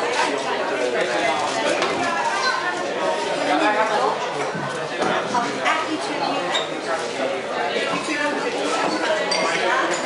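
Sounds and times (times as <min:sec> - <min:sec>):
restaurant chatter: 0:00.0 - 0:10.0.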